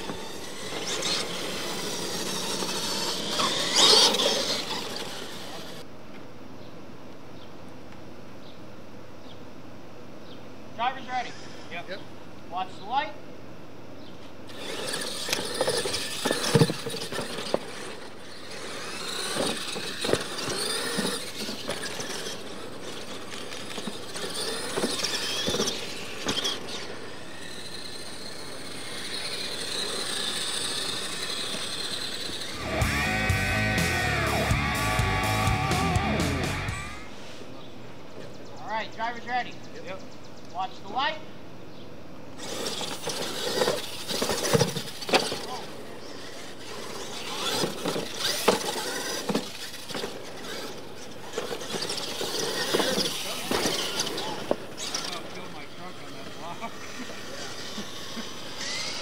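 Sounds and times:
high squealing glides: 0:00.0 - 0:05.9, 0:14.5 - 0:37.7, 0:42.4 - 0:59.0
rc monster trucks racing: 0:00.0 - 0:05.9, 0:10.9 - 0:12.0, 0:14.4 - 0:37.6, 0:42.3 - 0:59.0
music sting with heavy bass: 0:32.6 - 0:37.0.

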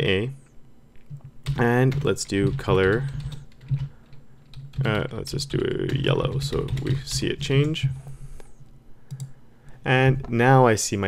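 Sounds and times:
computer keyboard key clicks: 0:09.1 - 0:09.3.

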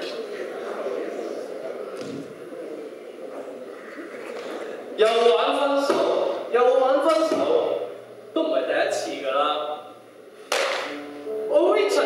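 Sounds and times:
sharp crack: 0:10.5 - 0:11.0.

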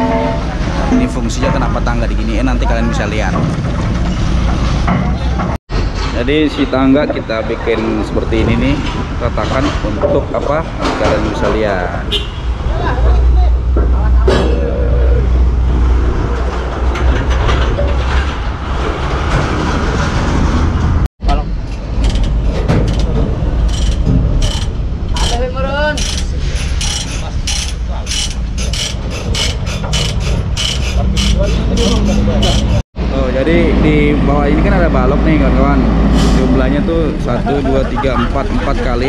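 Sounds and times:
metallic ratchet clicks and rattles: 0:21.8 - 0:25.4, 0:26.0 - 0:32.8.

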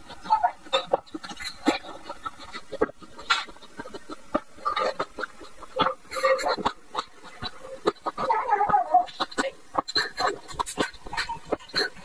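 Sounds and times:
grape being chewed: 0:00.1 - 0:12.0.

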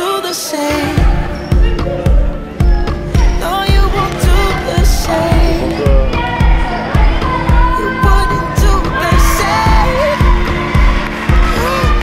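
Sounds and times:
pop music with drum beat: 0:00.0 - 0:12.0
person singing: 0:03.1 - 0:12.0.

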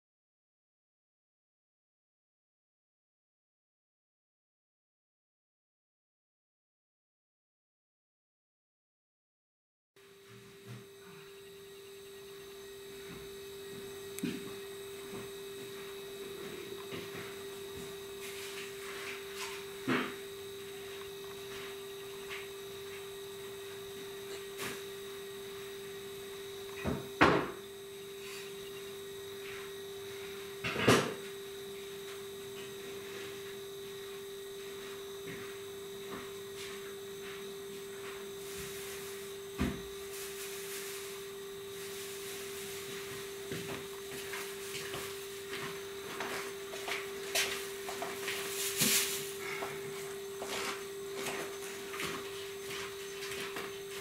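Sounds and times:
steady hum: 0:10.0 - 0:54.0.

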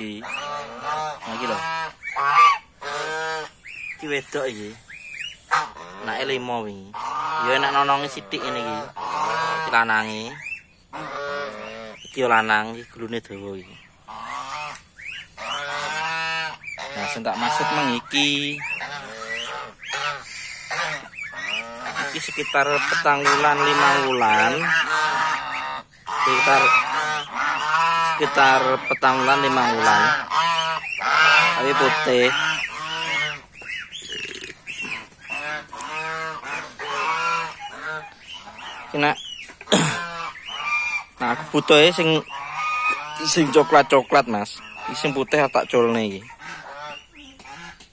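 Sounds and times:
geese honking: 0:00.0 - 0:47.9.

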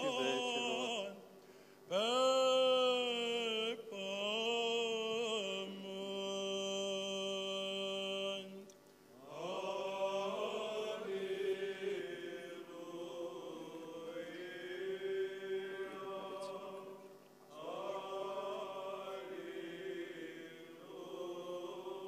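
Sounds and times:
church chant: 0:00.0 - 0:22.0.

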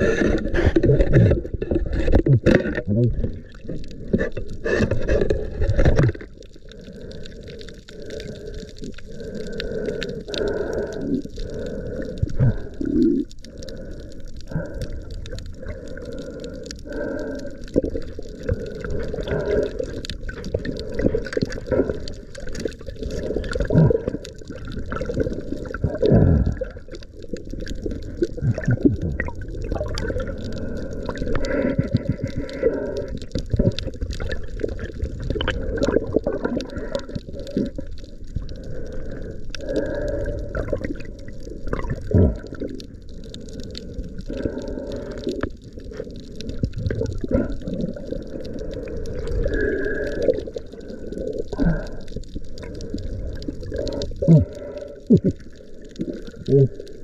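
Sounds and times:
muffled water sloshing underwater: 0:00.0 - 0:57.0.

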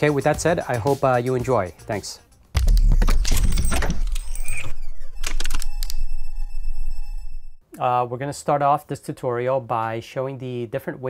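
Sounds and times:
deep boom: 0:02.6 - 0:05.2
bright ringing tone: 0:02.9 - 0:07.6.

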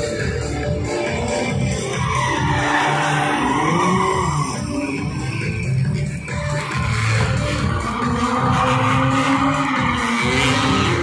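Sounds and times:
loud music: 0:00.0 - 0:11.0
tyres skidding: 0:00.0 - 0:11.0
vehicle engine revving: 0:00.1 - 0:11.0.

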